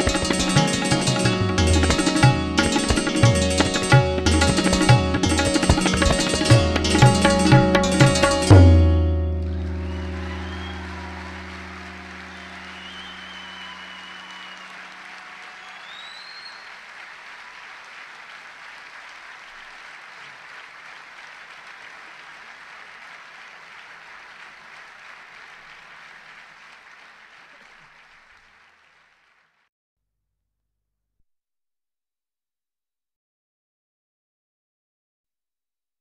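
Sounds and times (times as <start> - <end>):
audience applauding: 0.0 - 8.5, 9.4 - 29.7
tabla music: 0.0 - 14.7
high whistles: 9.6 - 16.8.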